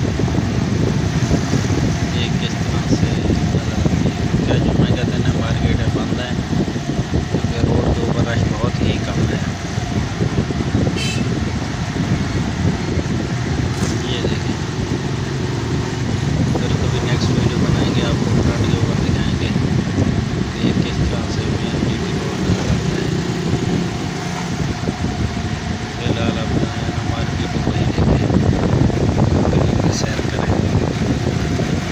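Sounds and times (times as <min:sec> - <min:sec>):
small vehicle engine and road noise: 0:00.0 - 0:31.9.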